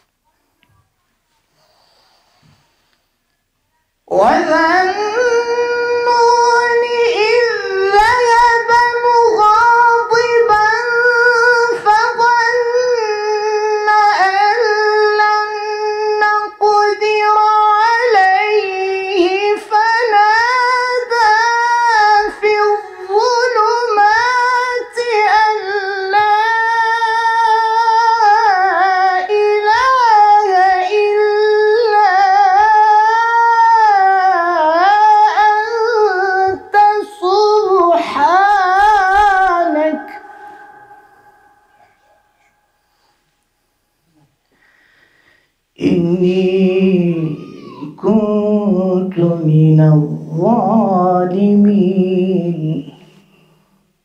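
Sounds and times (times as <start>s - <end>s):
man breathing: 1.5s - 3.2s, 40.2s - 43.5s, 44.1s - 45.7s
man chanting into microphone: 4.1s - 42.7s, 45.8s - 53.5s.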